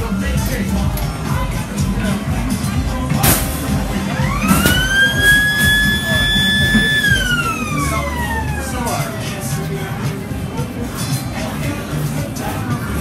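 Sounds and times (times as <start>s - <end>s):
fairground music: 0.0s - 13.0s
siren wailing: 3.9s - 9.4s.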